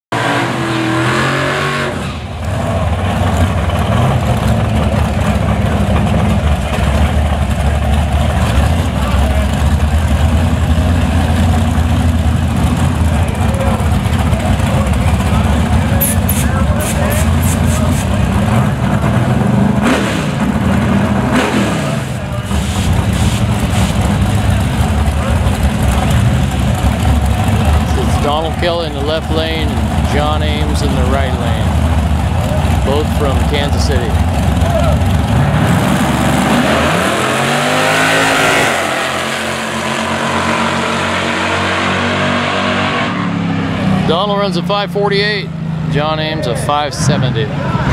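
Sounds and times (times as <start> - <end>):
drag racing engines revving: 0.1 - 47.9.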